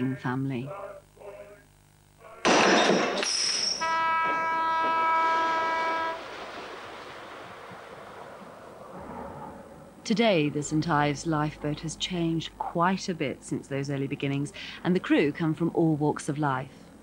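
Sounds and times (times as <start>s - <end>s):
horn blast: 3.8s - 6.9s
rush of splashing water: 5.2s - 9.5s.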